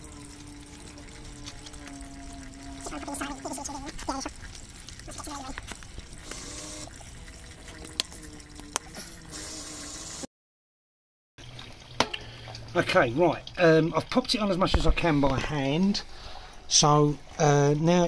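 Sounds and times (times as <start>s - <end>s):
voice-like hum: 0.0s - 4.4s, 5.1s - 5.6s
wavering tones: 0.0s - 9.9s.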